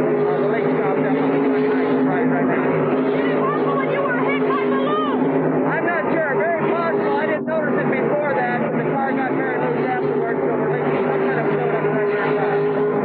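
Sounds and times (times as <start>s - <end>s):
man talking indistinctly: 0.0s - 13.0s
race car engines droning: 0.0s - 13.0s.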